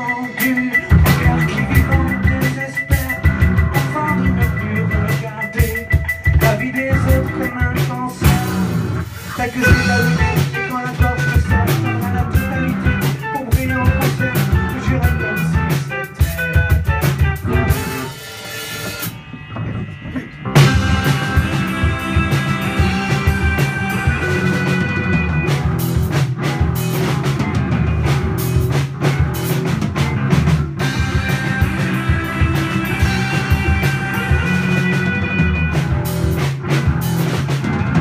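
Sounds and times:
live rock band playing: 0:00.0 - 0:38.0.

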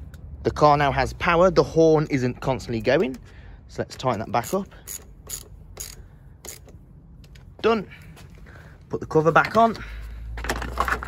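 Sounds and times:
ratchet wrench clicking: 0:03.9 - 0:06.8.

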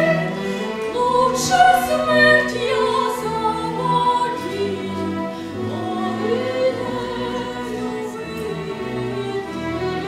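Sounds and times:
woman singing opera aria: 0:00.0 - 0:09.6
chamber orchestra: 0:00.0 - 0:10.0.

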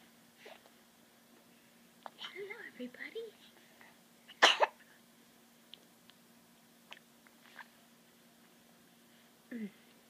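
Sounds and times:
person coughing: 0:04.4 - 0:04.8.

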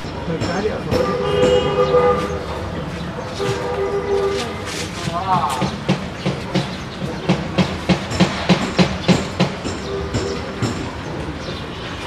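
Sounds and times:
steady horn-like tone: 0:03.4 - 0:04.8
sharp clacks: 0:04.8 - 0:11.4.

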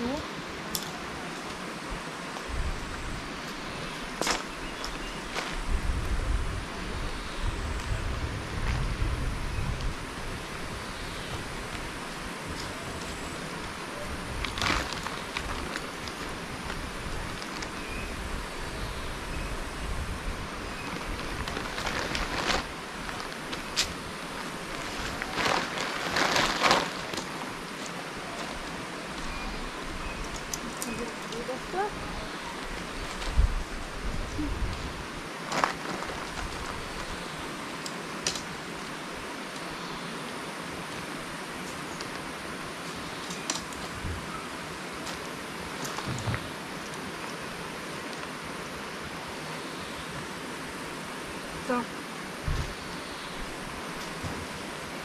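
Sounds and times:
steady outdoor hiss: 0:00.0 - 0:55.0
tent fabric rustling: 0:14.3 - 0:17.8, 0:20.8 - 0:29.6, 0:30.2 - 0:37.6.

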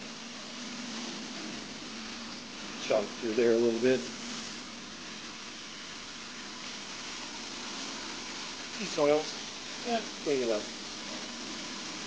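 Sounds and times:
carpet extraction wand hissing: 0:00.0 - 0:12.0.

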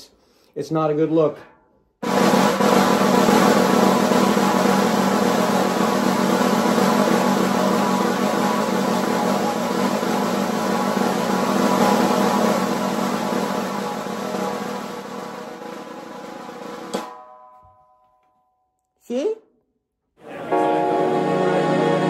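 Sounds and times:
snare drum buzz roll: 0:02.0 - 0:17.2.

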